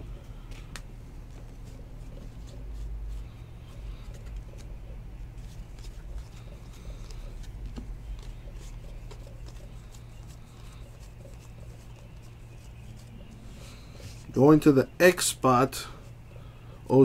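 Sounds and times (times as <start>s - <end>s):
low hum: 0.0s - 17.0s.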